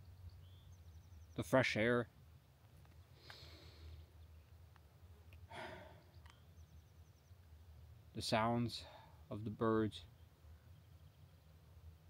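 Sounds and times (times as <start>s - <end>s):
man's breathy exhale: 3.2s - 4.0s, 5.5s - 6.1s.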